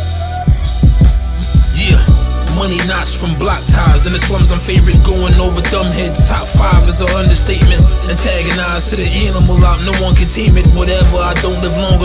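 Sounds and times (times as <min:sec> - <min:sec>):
rapping over a beat: 0:00.0 - 0:12.0
heavy bass kicks: 0:00.5 - 0:12.0.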